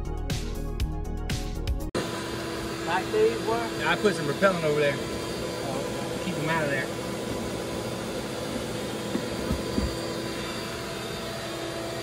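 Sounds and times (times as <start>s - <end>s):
steady hum: 2.0s - 12.0s
people talking: 2.8s - 7.0s.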